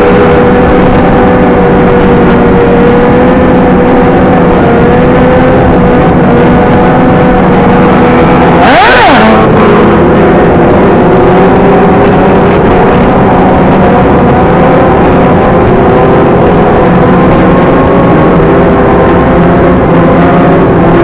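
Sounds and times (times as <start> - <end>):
motorcycle engines cruising: 0.0 - 21.0
wind and road noise: 0.0 - 21.0.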